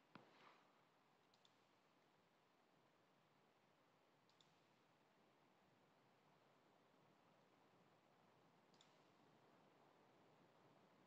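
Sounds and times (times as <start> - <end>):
faint ticks: 4.3 - 4.7, 8.7 - 9.1
computer mouse click: 8.7 - 9.0.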